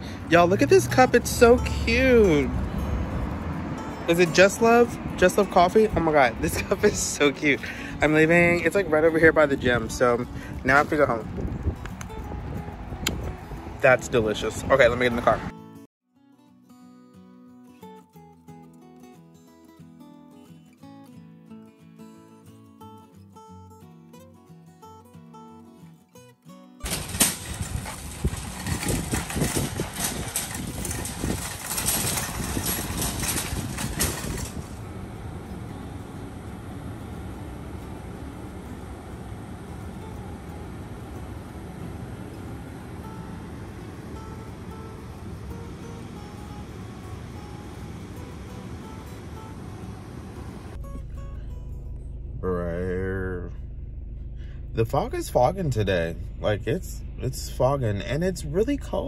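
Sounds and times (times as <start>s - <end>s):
car road noise on wet road: 0.0s - 8.0s
acoustic guitar music: 0.0s - 53.5s.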